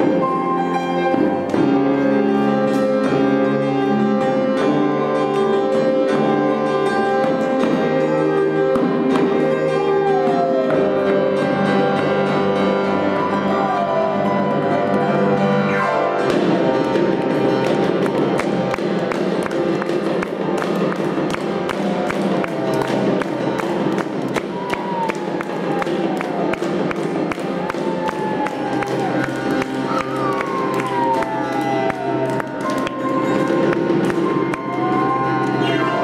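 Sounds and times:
percussion strikes: 0.0s - 13.5s, 16.2s - 36.0s
piano: 0.0s - 36.0s.

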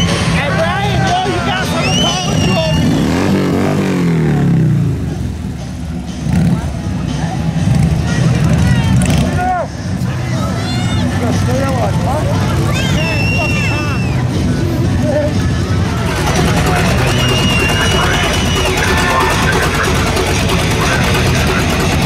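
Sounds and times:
vehicle engine droning: 0.0s - 22.0s
people shouting: 12.6s - 14.3s, 16.0s - 21.7s.

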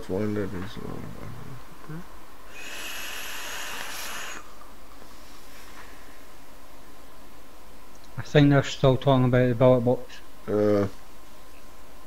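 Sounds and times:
airy hiss with thin whistle: 2.5s - 6.4s.

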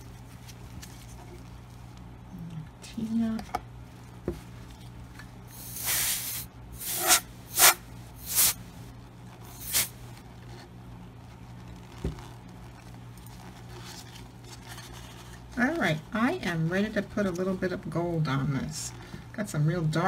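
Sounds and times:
short hissing bursts of air: 5.5s - 8.6s, 9.4s - 10.0s.

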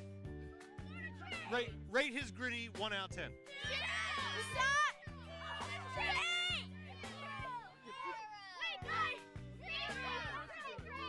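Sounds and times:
background music with low notes: 0.0s - 11.0s
children shouting excitedly: 0.5s - 1.7s, 3.5s - 11.0s.

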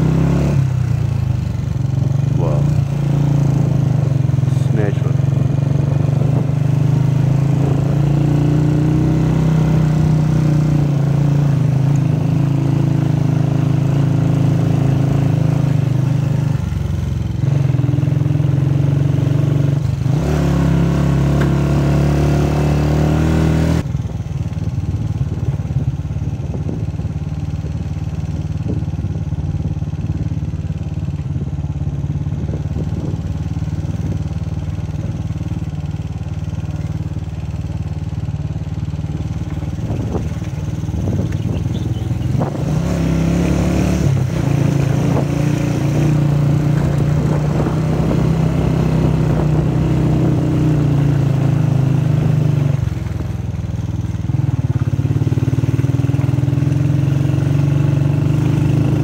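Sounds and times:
motorcycle engine running: 0.0s - 59.0s.

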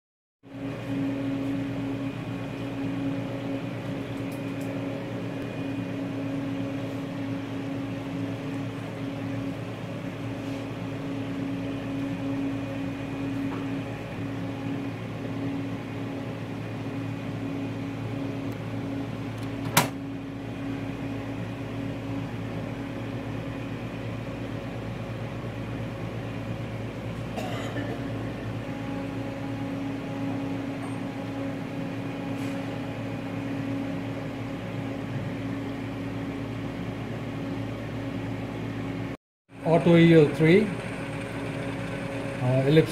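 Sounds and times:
equipment humming: 0.5s - 42.9s.

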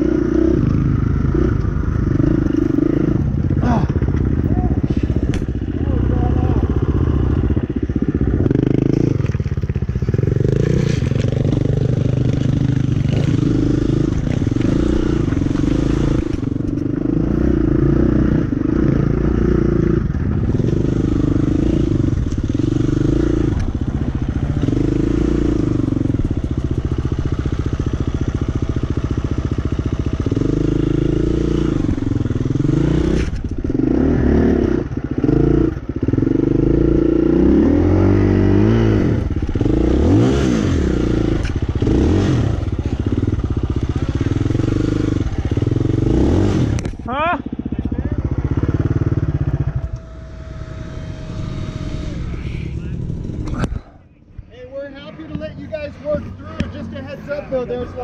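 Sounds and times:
dirt bike engine revving: 0.0s - 53.9s.

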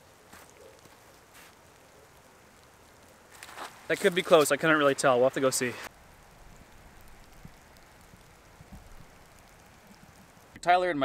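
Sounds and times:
light rain hissing: 0.0s - 11.0s.

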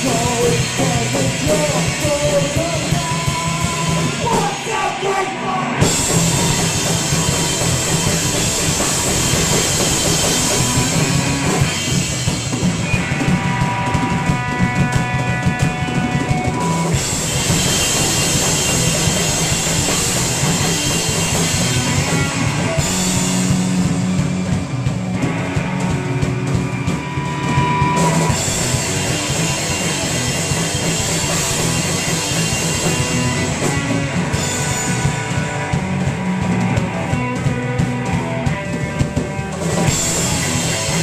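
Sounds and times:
bass guitar: 0.0s - 41.0s
drums: 0.0s - 41.0s
electric guitars: 0.0s - 41.0s
rock band playing: 0.0s - 41.0s.

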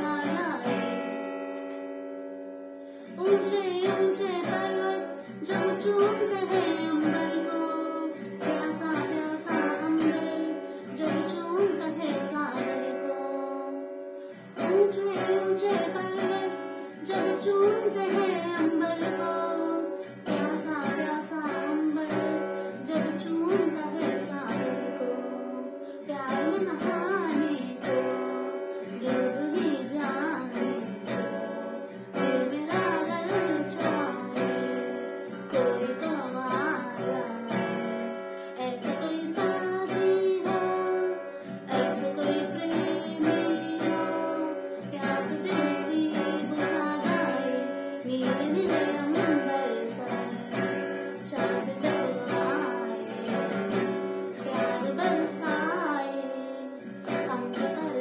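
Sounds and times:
strummed acoustic guitar: 0.0s - 58.0s
woman singing: 0.0s - 58.0s.

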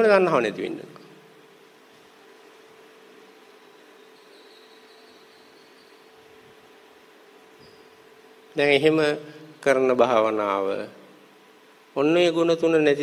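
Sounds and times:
faint high whine: 0.0s - 13.0s
low hum with hiss: 0.0s - 13.0s.

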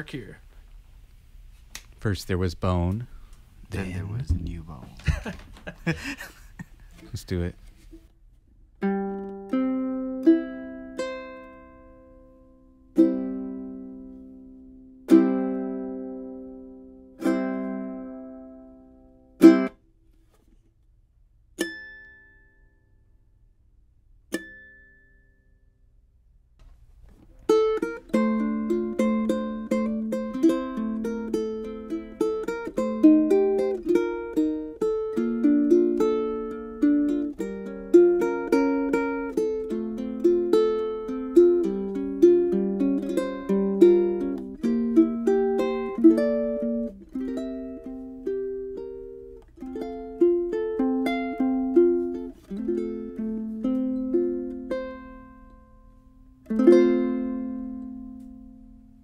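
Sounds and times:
fingerstyle ukulele: 8.8s - 20.4s, 21.5s - 22.8s, 24.3s - 25.3s, 26.6s - 59.0s.

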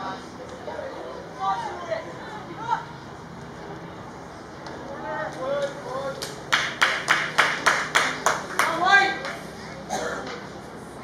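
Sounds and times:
person clapping hands: 6.2s - 9.4s.

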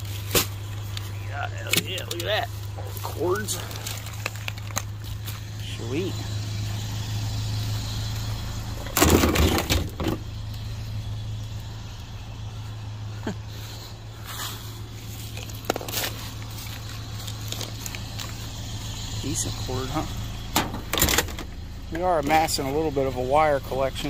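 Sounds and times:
wire and cords rustling: 0.0s - 6.1s, 14.2s - 22.8s
pickup truck engine idling: 0.0s - 24.0s.

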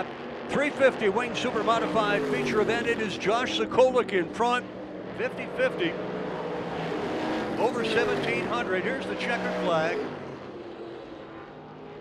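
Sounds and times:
distant race car engine droning: 0.0s - 12.0s.

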